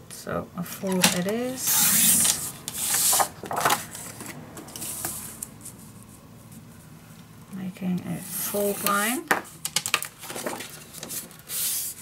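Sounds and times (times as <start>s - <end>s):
cardstock sliding and rustling: 1.0s - 5.4s.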